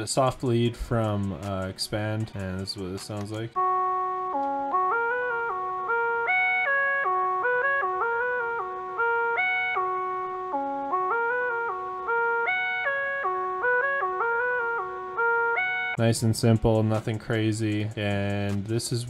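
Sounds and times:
soft synth lead melody: 0:00.1 - 0:16.4.

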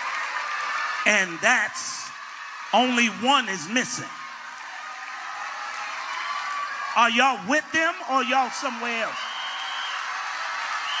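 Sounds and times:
congregation cheering and shouting: 0:00.0 - 0:11.0.

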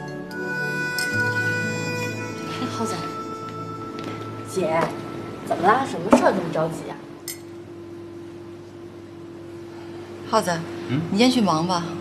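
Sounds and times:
steady low hum: 0:00.0 - 0:12.0
woman speaking: 0:02.5 - 0:03.3, 0:04.5 - 0:07.1, 0:10.2 - 0:12.0.

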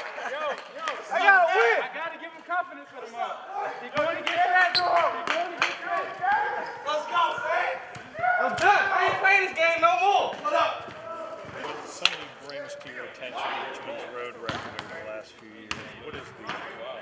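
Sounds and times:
players calling and chattering: 0:00.0 - 0:17.0.

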